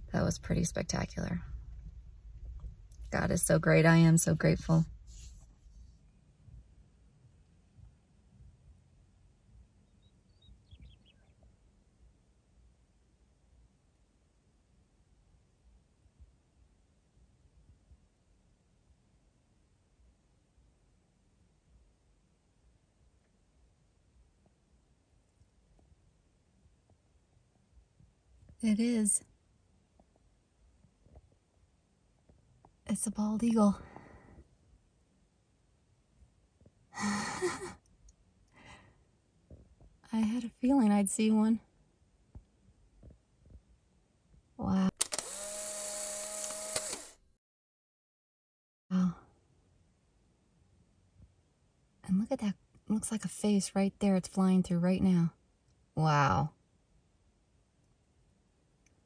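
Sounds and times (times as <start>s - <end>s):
bird chirping: 9.8s - 11.4s.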